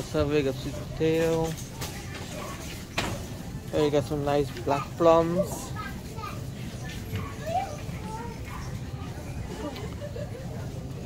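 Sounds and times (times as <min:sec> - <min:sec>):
faint voices of shoppers: 0:00.0 - 0:11.0
child's voice: 0:01.8 - 0:02.8, 0:04.8 - 0:09.3.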